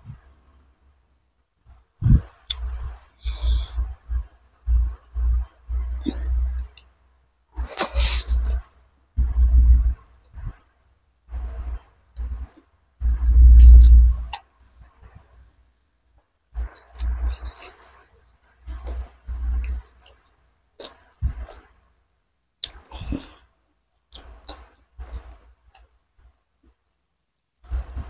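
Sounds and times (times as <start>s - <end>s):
close-miked chewing: 16.6s - 21.7s.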